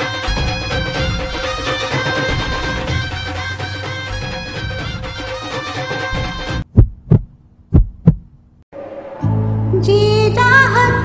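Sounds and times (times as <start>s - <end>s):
heartbeat thumps: 0.2s - 8.4s.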